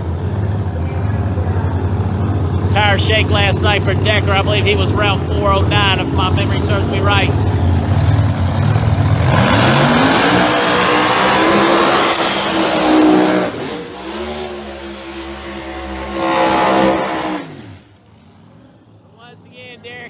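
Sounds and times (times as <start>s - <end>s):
drag car engine revving: 0.0s - 20.0s.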